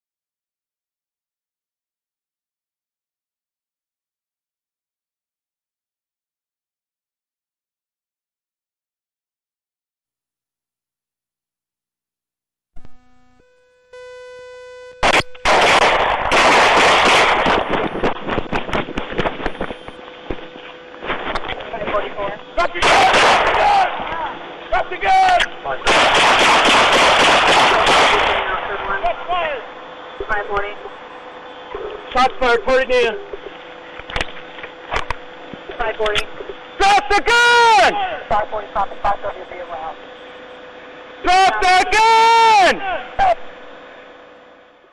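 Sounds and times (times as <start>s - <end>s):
steady electronic tone: 12.8s - 15.5s, 19.4s - 20.9s
rapid handgun shots: 15.0s - 18.2s, 22.8s - 23.9s, 25.8s - 28.7s
man shouting: 22.6s - 25.4s, 36.8s - 38.3s, 41.2s - 43.4s.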